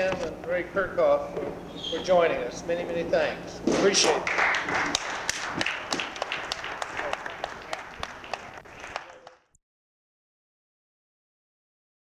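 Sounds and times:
audience applauding: 4.1s - 9.6s.

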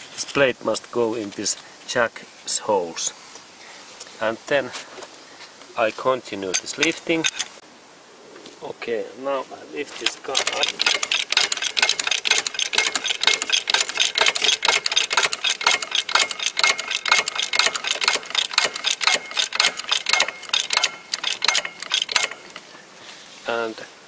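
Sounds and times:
floor jack pumping clicks: 10.0s - 22.6s.

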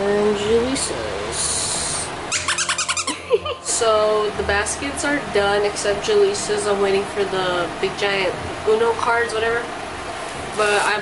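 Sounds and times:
toy short hiss: 1.4s - 2.6s
rapid chattering animal-like call: 2.3s - 3.2s.

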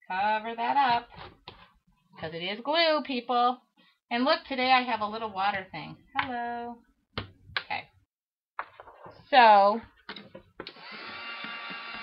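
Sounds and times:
heat gun motor whine: 10.7s - 12.0s.

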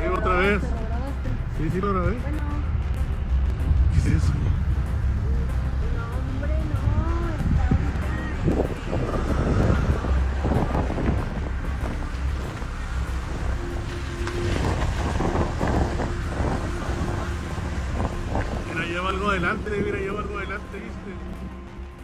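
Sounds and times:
indistinct voices: 0.0s - 22.0s
wind buffeting microphone: 0.0s - 22.0s.

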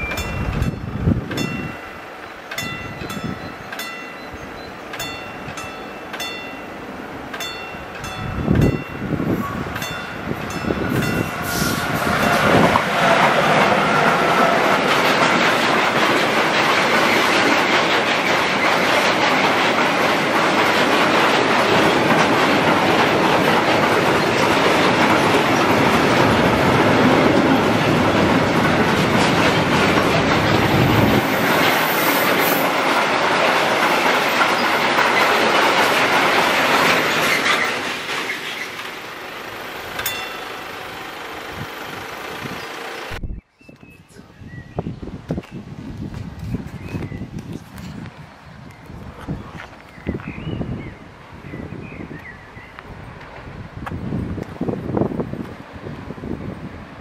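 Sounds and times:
freight train wheels rolling on rails: 0.0s - 43.2s, 44.9s - 57.0s.

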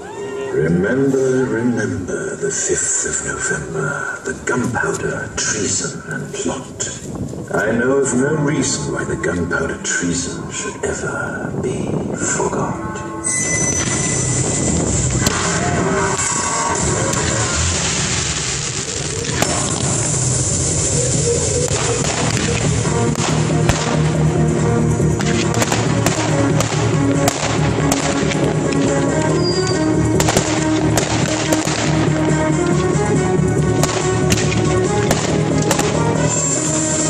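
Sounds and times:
music soundtrack: 7.5s - 37.0s
ground fountain fireworks hissing: 13.8s - 37.0s
firework bangs and cracks: 14.9s - 24.3s, 25.2s - 29.4s, 30.1s - 36.6s.

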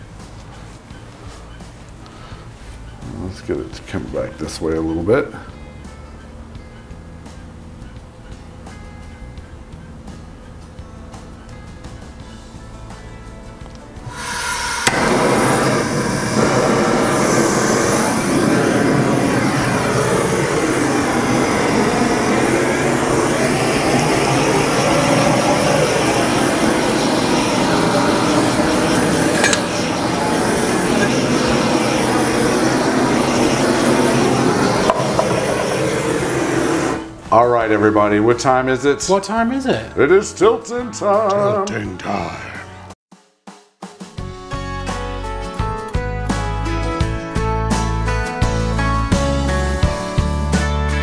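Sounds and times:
torch flame hissing: 14.1s - 37.3s.

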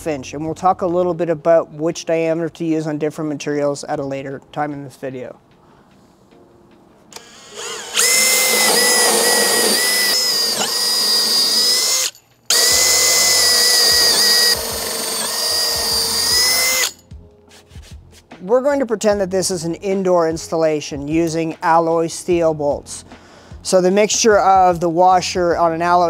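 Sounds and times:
power drill boring through wood: 7.2s - 17.0s.

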